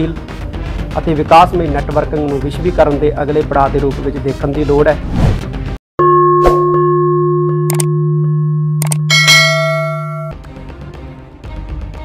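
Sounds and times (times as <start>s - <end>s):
bright bell chime: 6.0s - 10.4s
mouse click: 7.7s - 7.9s.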